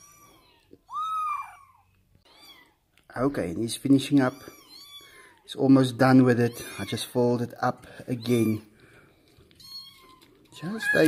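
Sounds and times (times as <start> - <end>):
kitten mewing: 0.0 - 2.7.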